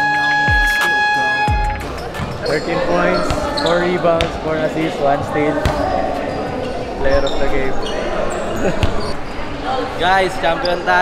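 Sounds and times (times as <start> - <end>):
background music with bass hit: 0.0 - 2.5
voices in gym hall: 0.6 - 11.0
basketballs bouncing on court: 2.0 - 7.2, 8.6 - 9.2.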